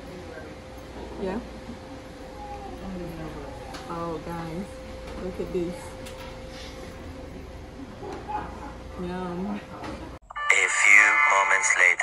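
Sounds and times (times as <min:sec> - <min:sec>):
narrator voice-over: 0:10.5 - 0:12.0.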